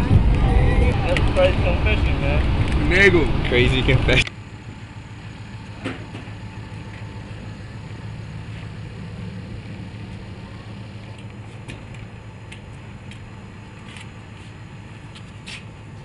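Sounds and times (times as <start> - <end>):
fuel pump humming: 0.0 - 16.0.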